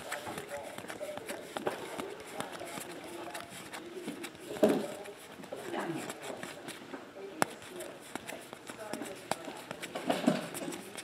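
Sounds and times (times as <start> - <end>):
cards being flipped through: 0.0 - 11.0
faint voices: 0.0 - 11.0.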